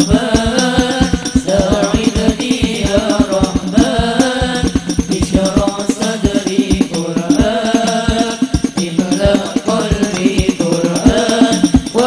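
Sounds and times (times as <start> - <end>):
frame drums beating: 0.0 - 12.0
men singing in unison: 0.0 - 12.0.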